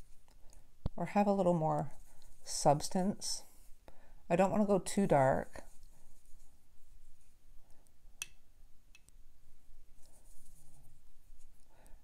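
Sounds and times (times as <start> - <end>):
brush working paint in palette: 1.1 - 3.8, 5.2 - 7.4, 9.9 - 11.7.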